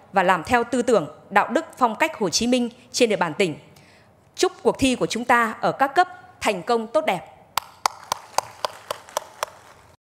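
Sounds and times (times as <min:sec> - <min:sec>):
hands clapping: 0:07.6 - 0:09.9.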